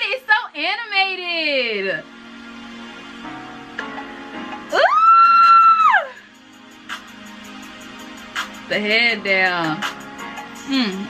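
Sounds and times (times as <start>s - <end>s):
faint background music: 0.0s - 11.0s
woman squealing: 4.7s - 6.2s.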